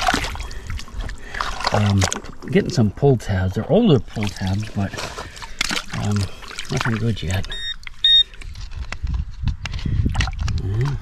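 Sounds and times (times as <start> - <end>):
water sloshing: 0.0 - 8.8.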